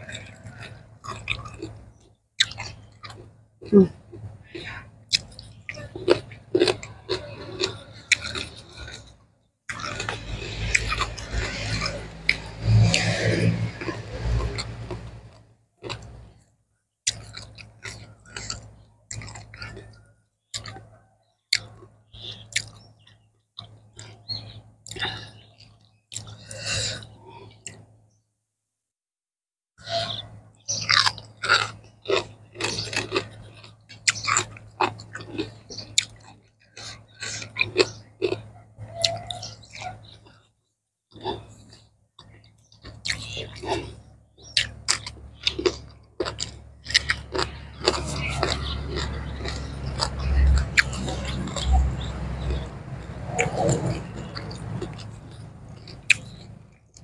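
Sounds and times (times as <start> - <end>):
wet chewing and crunching: 0.0 - 28.0, 29.8 - 57.0.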